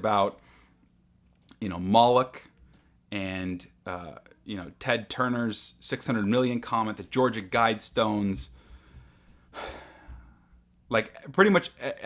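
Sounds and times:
man sighing: 9.5s - 10.5s.

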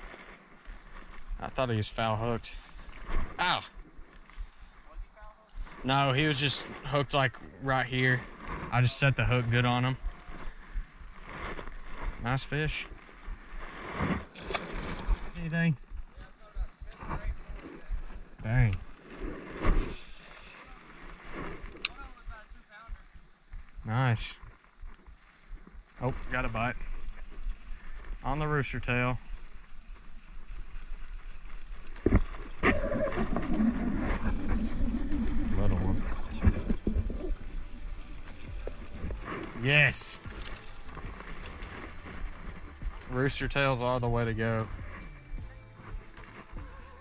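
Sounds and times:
faint wind: 0.0s - 47.0s.

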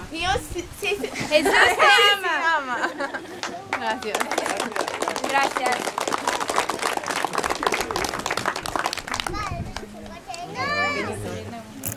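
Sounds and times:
crowd of voices: 0.0s - 11.9s
people clapping: 3.3s - 10.6s.

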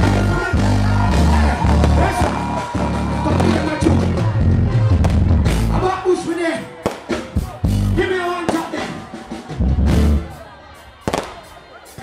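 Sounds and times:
deep bass hit: 0.0s - 5.8s
dancehall music over pa: 0.0s - 12.0s.

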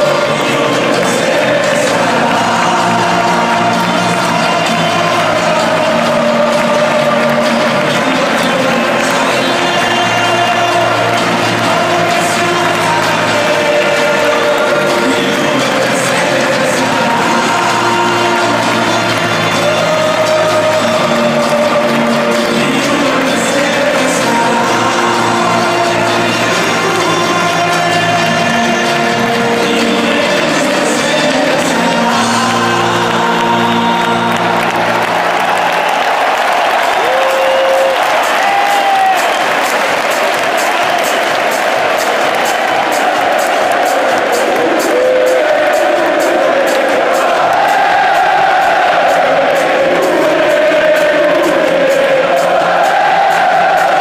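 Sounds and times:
crowd cheering and applause: 0.0s - 54.0s
crowd singing: 0.0s - 54.0s
music over stadium loudspeakers: 0.0s - 54.0s.

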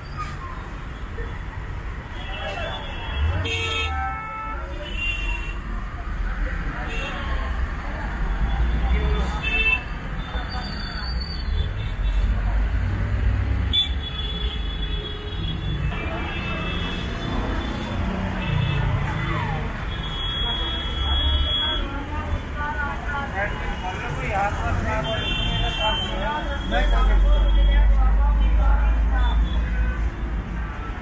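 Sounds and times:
passing vehicle engines rumbling: 0.0s - 31.0s
voices in background: 1.2s - 13.2s, 15.9s - 30.0s.

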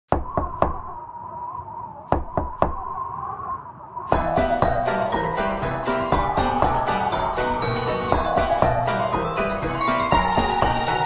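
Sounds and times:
knocks on a door: 2.1s - 2.8s
wavering high held tone: 3.9s - 11.0s.

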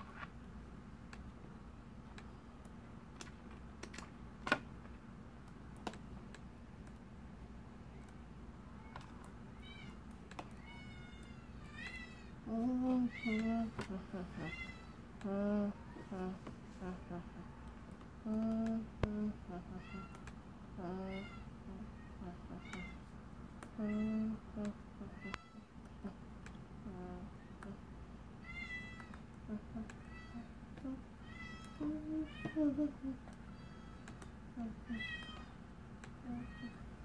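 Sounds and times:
girl humming and squealing: 11.7s - 17.5s, 20.8s - 23.0s, 29.5s - 34.0s.

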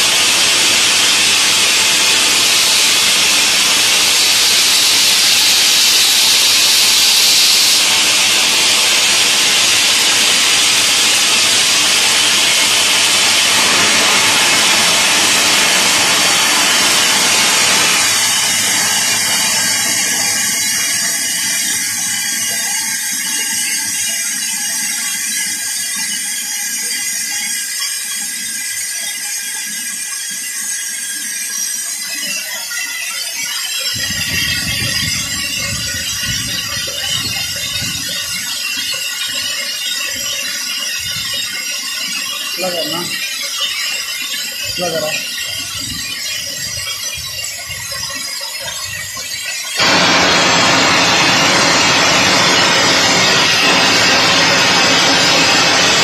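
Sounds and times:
steam hissing from valve: 0.0s - 56.0s.

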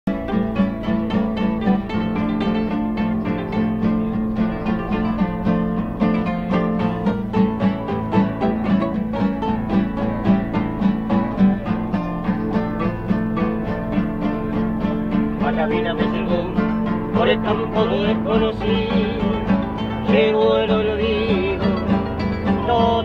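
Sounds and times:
acoustic guitar plucked and strummed: 0.1s - 23.0s.

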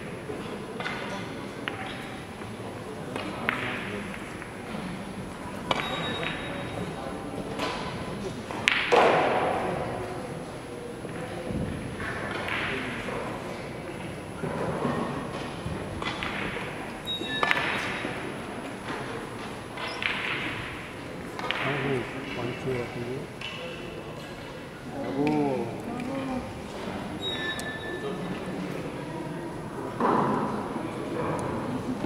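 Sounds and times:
faint clicks from neighbouring tables: 0.0s - 9.8s, 11.0s - 28.9s.

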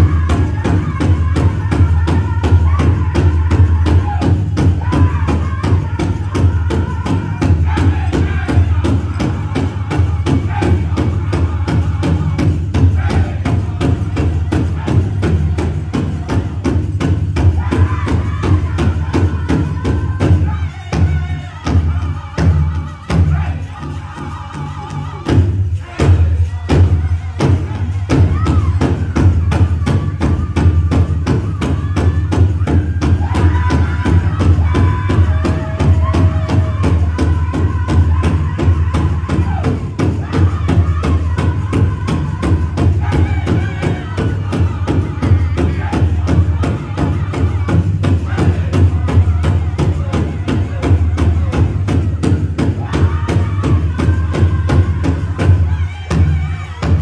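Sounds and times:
big drum beating: 0.0s - 24.0s, 25.2s - 57.0s
group singing: 0.0s - 57.0s.

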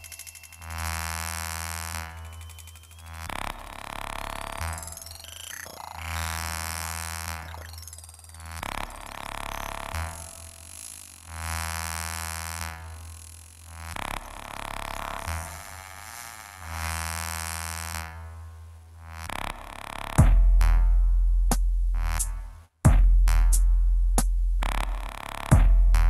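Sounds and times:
buzzing electronic drone: 0.0s - 26.0s.

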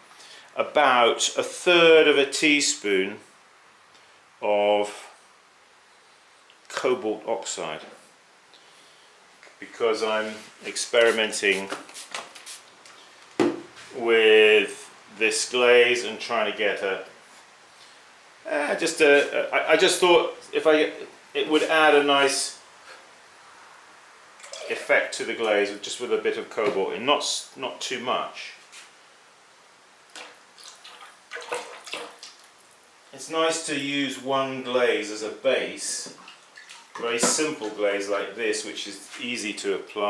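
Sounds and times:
short knock: 13.4s - 13.7s
liquid glaze sloshing in bucket: 30.1s - 32.9s, 36.2s - 37.2s.

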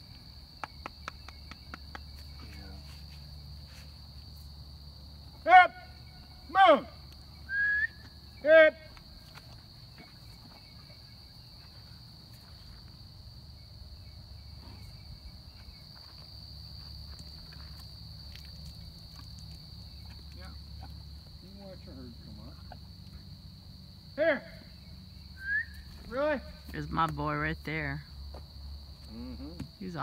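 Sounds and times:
high-pitched insect chorus: 0.0s - 30.0s.

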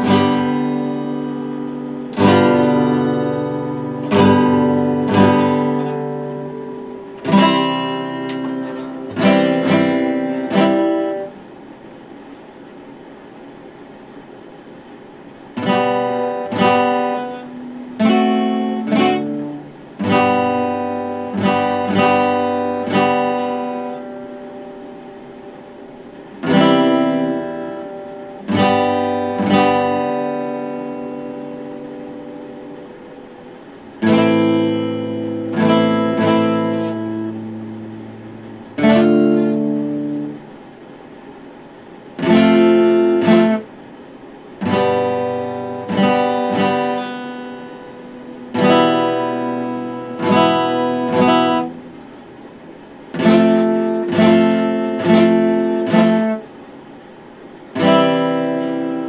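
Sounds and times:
acoustic guitar strummed slowly: 0.0s - 59.0s.

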